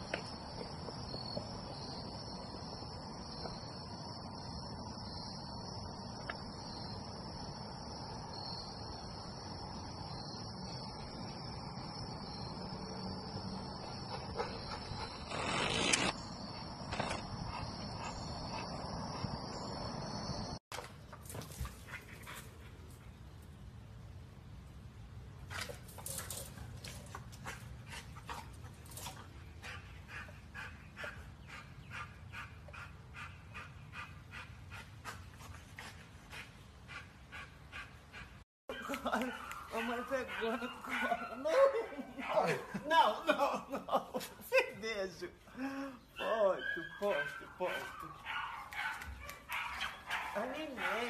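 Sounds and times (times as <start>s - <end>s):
dog panting hard: 27.4s - 38.4s.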